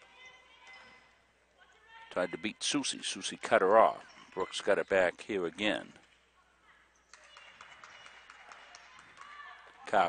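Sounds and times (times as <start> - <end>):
sneakers squeaking: 0.0 - 1.8, 3.1 - 6.2, 6.8 - 8.0.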